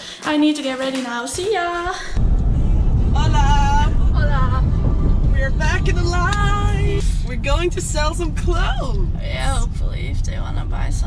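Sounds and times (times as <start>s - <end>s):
car interior rumble: 2.1s - 11.0s.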